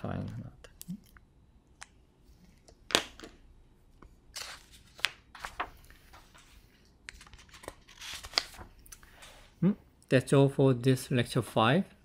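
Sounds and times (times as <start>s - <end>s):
paper rustling: 4.3s - 9.4s.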